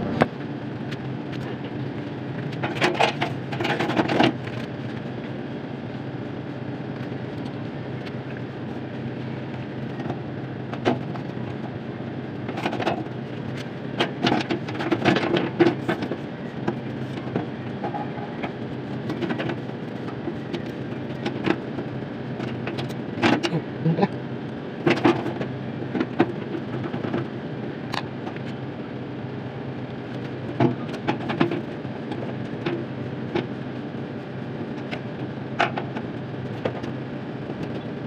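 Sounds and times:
low mechanical hum: 0:00.0 - 0:38.0.

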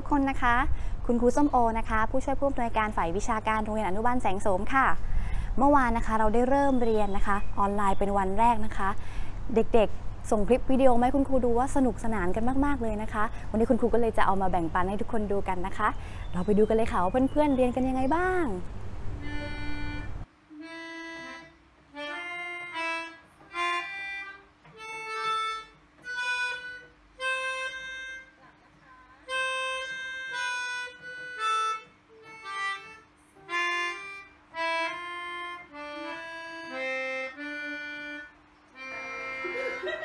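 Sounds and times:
melodica playing slow tune: 0:19.2 - 0:28.5, 0:29.2 - 0:40.0.

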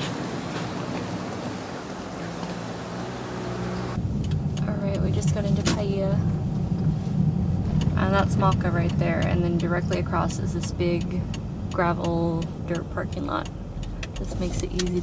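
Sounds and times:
engine and tyre rumble: 0:00.0 - 0:15.0.

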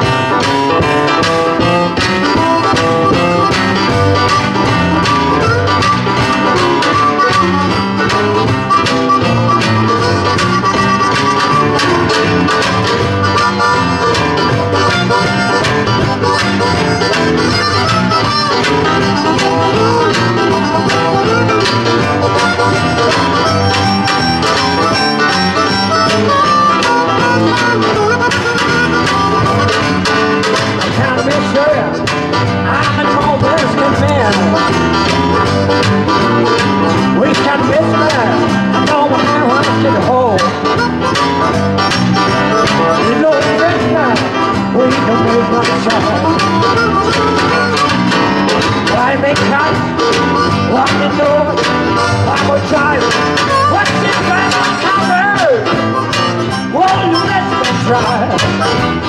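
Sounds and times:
acoustic guitar: 0:00.0 - 0:59.0
electric bass guitar: 0:00.0 - 0:59.0
harmonica: 0:00.0 - 0:59.0.

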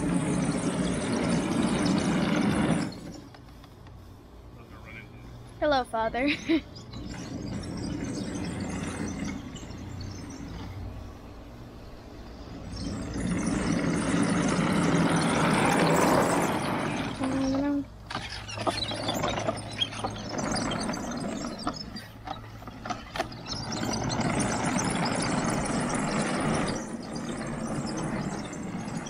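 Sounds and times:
electric motors humming: 0:00.0 - 0:29.0
wooden tracks rattling: 0:12.6 - 0:29.0.

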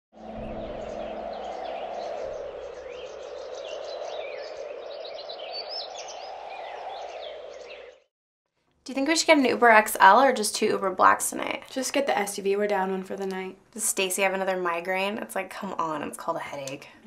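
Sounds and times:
rushing outdoor ambience: 0:00.2 - 0:07.8
birds chirping and singing: 0:00.2 - 0:08.1.

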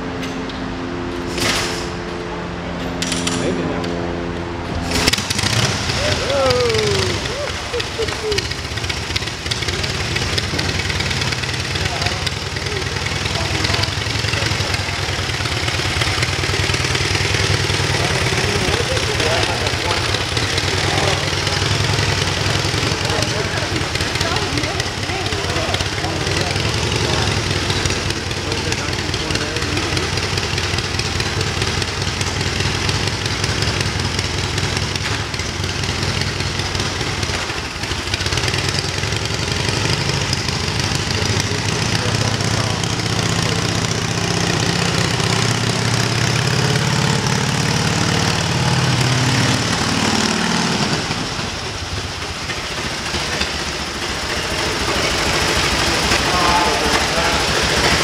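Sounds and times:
motorcycle engine running: 0:00.0 - 0:58.0.

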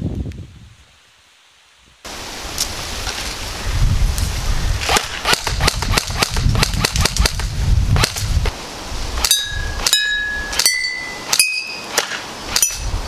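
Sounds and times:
airsoft rifle shots: 0:04.9 - 0:08.2.

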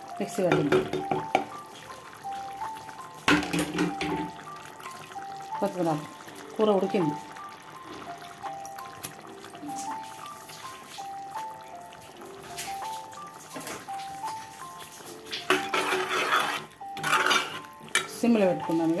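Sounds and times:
simple melody background music: 0:00.0 - 0:19.0.

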